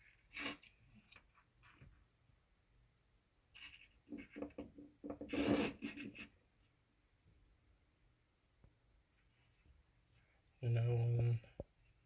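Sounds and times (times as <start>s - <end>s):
plastic containers scraping countertop: 3.6s - 6.3s.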